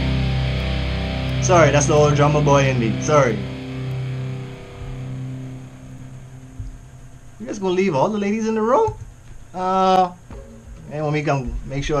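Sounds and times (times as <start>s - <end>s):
rock song electric guitar chord: 0.0s - 7.4s.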